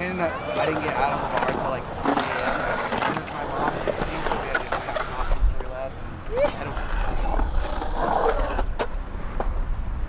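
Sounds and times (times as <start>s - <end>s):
skateboard wheels rolling on concrete: 0.0s - 10.0s
skateboard clack: 0.4s - 9.8s.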